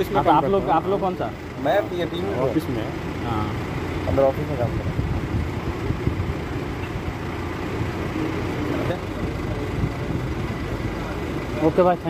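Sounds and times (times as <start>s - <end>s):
motor vehicle rumble: 0.0s - 12.0s.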